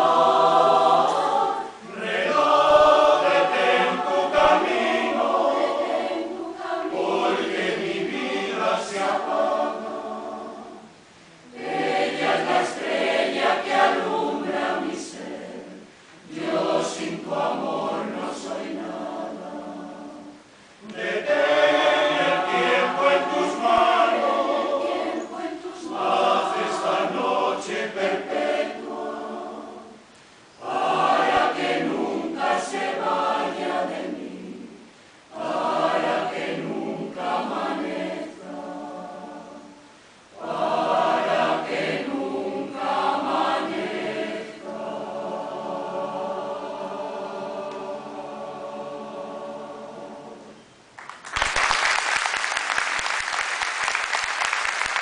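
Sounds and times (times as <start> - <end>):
mixed choir singing: 0.0 - 50.8.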